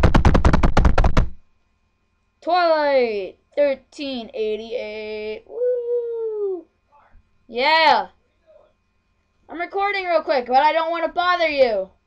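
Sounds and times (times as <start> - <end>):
fast drumroll: 0.0 - 1.4
people talking: 2.4 - 8.6, 9.5 - 11.9.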